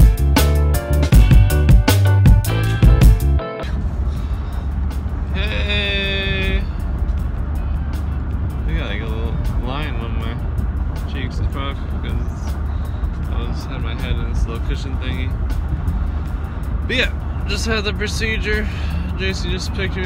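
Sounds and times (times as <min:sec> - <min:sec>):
music: 0:00.0 - 0:20.0
car cabin road rumble: 0:01.1 - 0:20.0.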